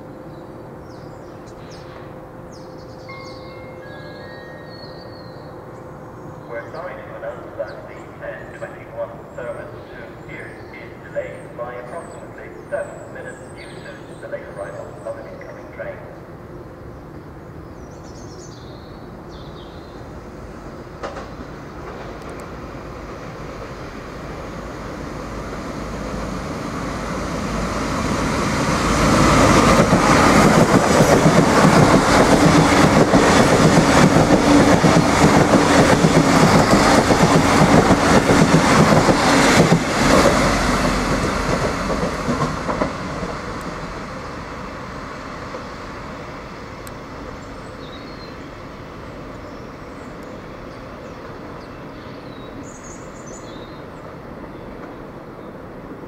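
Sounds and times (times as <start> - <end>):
diesel train engine passing: 0.0 - 56.0
train wheels clicking over track: 20.9 - 22.6, 28.7 - 43.8.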